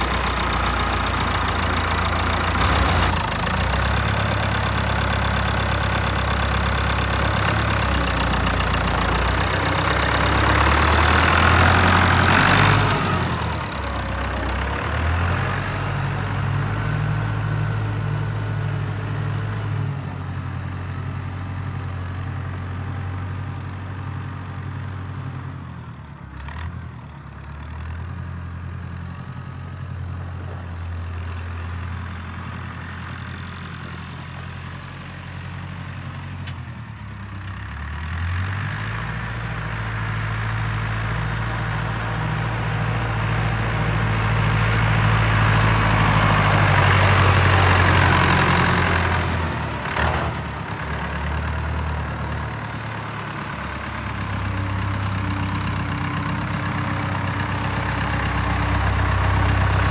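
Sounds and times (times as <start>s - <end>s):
tractor engine running: 0.0s - 59.9s.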